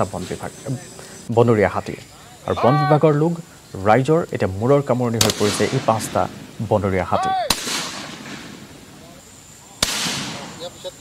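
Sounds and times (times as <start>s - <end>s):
loud explosive bangs with echo: 5.2s - 6.8s, 7.5s - 9.0s, 9.8s - 10.9s.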